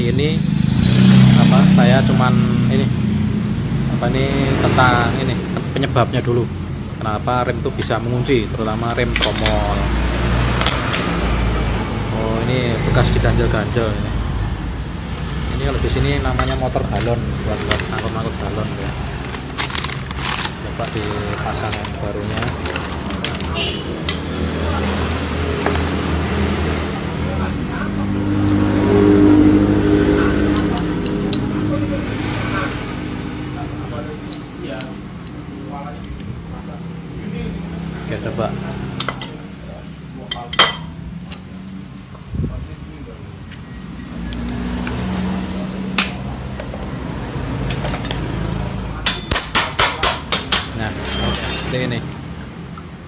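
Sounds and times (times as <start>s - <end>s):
vehicle engine hum: 0.0s - 53.0s
light metallic clinks: 10.6s - 11.2s, 51.0s - 52.0s.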